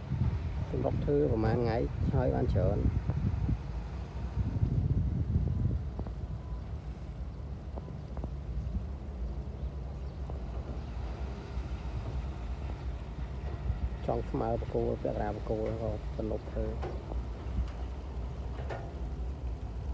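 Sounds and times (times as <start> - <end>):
engine noise: 0.0 - 19.9
wind on microphone: 0.0 - 19.9.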